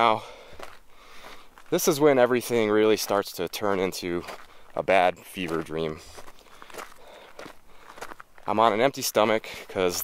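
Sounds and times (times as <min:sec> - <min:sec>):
footsteps crunching: 0:00.0 - 0:10.0.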